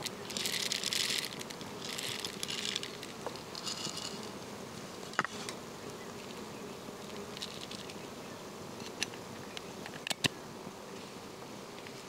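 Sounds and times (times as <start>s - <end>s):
insects buzzing: 0.0s - 12.0s.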